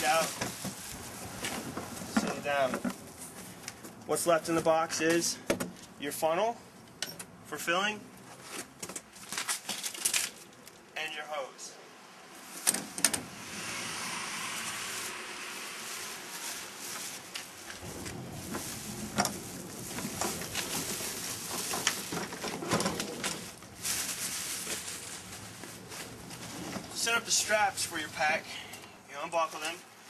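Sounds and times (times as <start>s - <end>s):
packaging rustling: 14.6s - 26.6s.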